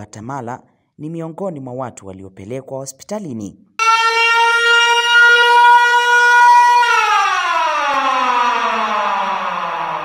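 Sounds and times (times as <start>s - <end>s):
emergency siren winding down: 3.8s - 10.0s.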